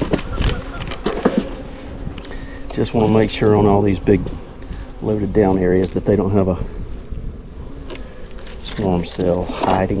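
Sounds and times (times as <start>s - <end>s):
honeybees buzzing: 0.0s - 10.0s.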